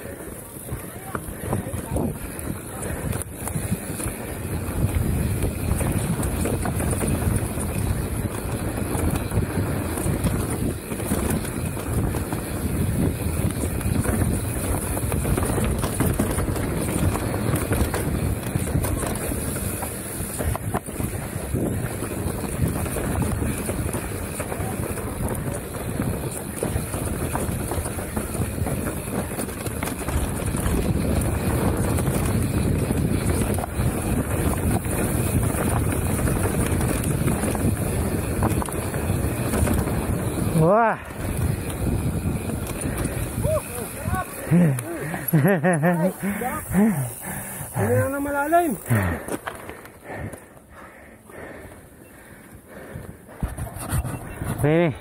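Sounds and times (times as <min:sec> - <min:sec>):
tyres rumbling on dirt: 0:00.0 - 0:50.9
bike rattling and clicking: 0:00.0 - 0:55.0
wind buffeting microphone: 0:00.0 - 0:55.0.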